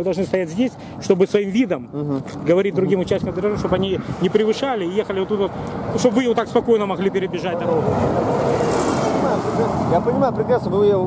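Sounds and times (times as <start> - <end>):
vehicle passing at speed: 2.5 - 11.0.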